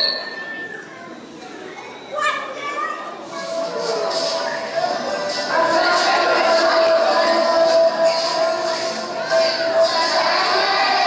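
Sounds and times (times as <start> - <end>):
low background voices: 0.0 - 11.0.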